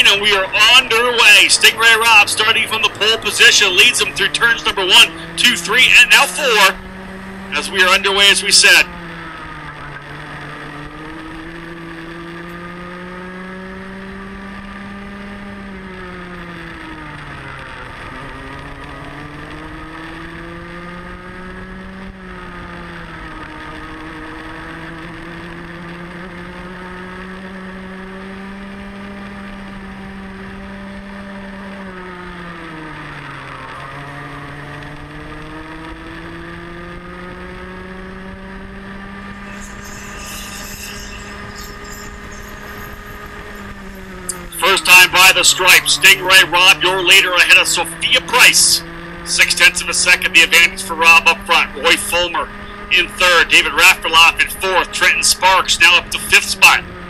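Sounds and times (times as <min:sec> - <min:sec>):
kart engine at racing speed: 0:00.0 - 0:57.0.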